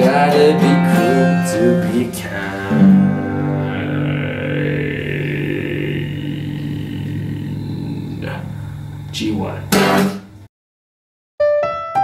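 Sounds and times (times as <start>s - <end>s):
acoustic guitar chord ringing: 0.0s - 4.3s.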